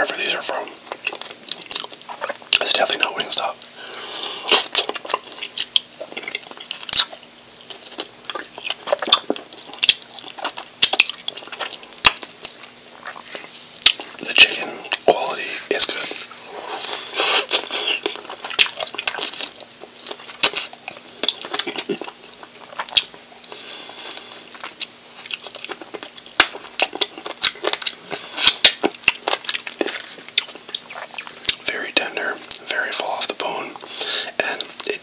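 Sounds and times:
chewing and biting meat: 0:00.8 - 0:03.0, 0:04.2 - 0:15.1, 0:15.9 - 0:35.0
sucking bone: 0:00.9 - 0:35.0
lip smacks: 0:03.9 - 0:15.2, 0:15.8 - 0:35.0.

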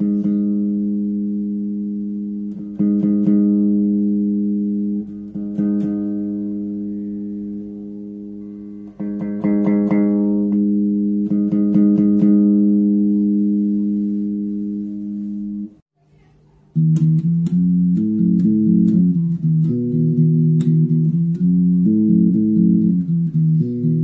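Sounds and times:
bass guitar plucked notes: 0:00.0 - 0:15.8, 0:16.7 - 0:24.0.

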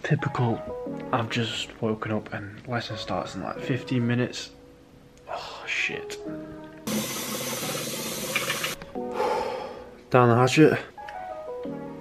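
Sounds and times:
water running from sink tap: 0:06.9 - 0:08.8.

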